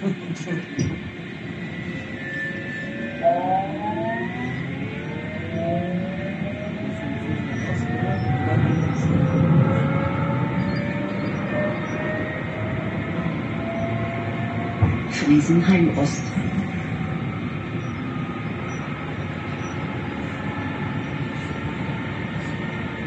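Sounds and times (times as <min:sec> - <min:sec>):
tram motors whining: 0:00.0 - 0:23.0
wheels rumbling on rails: 0:00.0 - 0:23.0.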